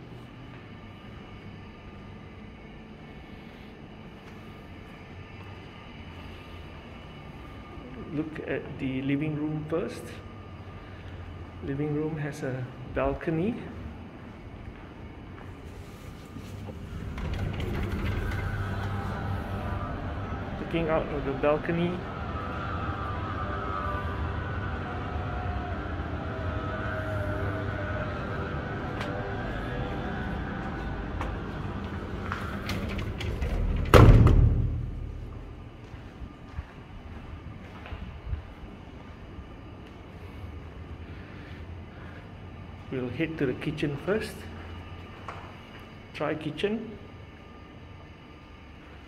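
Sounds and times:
faint wavering drawn-out tones: 0.0s - 33.1s
low background rumble: 9.6s - 43.8s.

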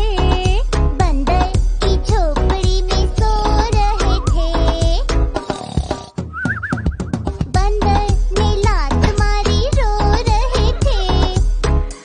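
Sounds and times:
children's song backing music: 0.0s - 5.5s, 7.2s - 12.0s.

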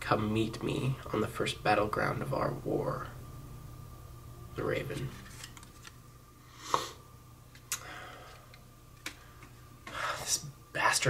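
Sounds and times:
paper rustling: 5.0s - 6.0s
person breathing in: 7.8s - 8.5s.

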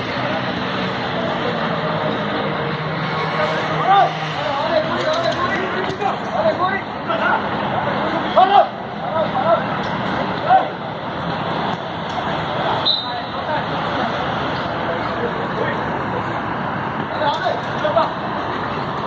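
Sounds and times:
crowd and street noise hum: 0.0s - 19.0s
people shouting short calls: 8.0s - 9.7s.

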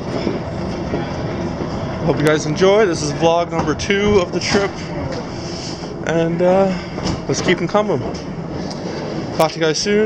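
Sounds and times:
train carriage rumbling: 0.0s - 10.0s.

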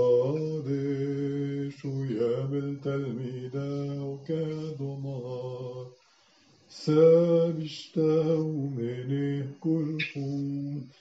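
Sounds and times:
man chanting: 0.0s - 6.0s, 6.7s - 11.0s.

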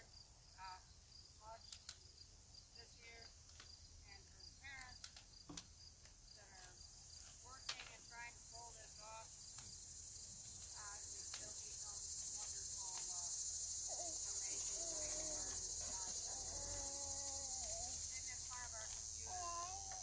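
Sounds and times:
insects buzzing chorus: 0.0s - 20.0s
faint distant voice talking: 13.9s - 20.0s.

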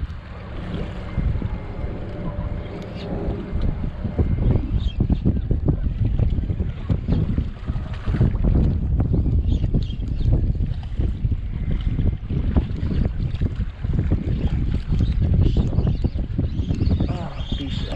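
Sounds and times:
strong wind buffeting microphone: 0.0s - 17.9s.

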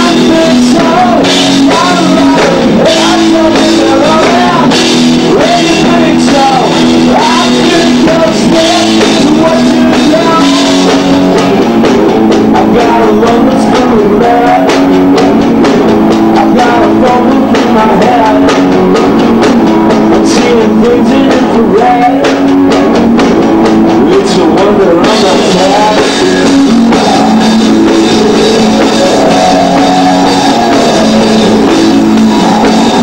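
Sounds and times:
drum kit: 0.0s - 33.0s
electric guitar: 0.0s - 33.0s.

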